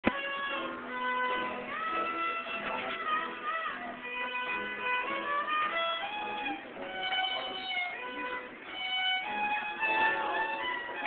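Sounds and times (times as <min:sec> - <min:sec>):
acoustic guitar playing: 0:00.0 - 0:11.0
fiddle sliding between notes: 0:00.0 - 0:11.0.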